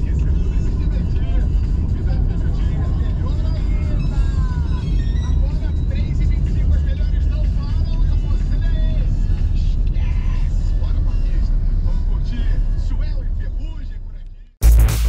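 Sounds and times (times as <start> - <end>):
music from outside: 0.0 - 13.1, 14.6 - 15.0
vehicle interior rumble: 0.0 - 14.6.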